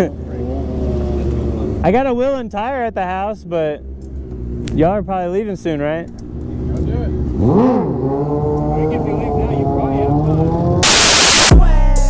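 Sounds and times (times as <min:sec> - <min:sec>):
motorcycle engine: 0:06.1 - 0:11.5
loud hiss: 0:10.8 - 0:11.6.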